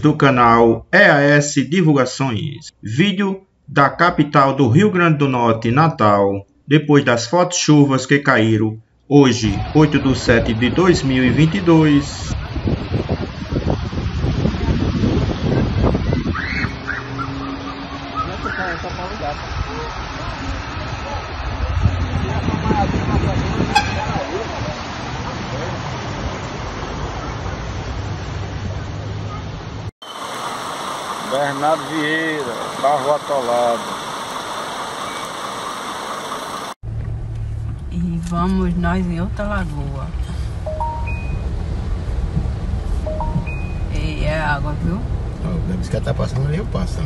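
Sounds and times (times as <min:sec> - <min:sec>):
car interior rumble: 0:35.0 - 0:47.0
three-tone rising chime: 0:40.6 - 0:41.6, 0:43.0 - 0:44.0
short sharp beep: 0:40.7 - 0:41.5, 0:43.1 - 0:44.0.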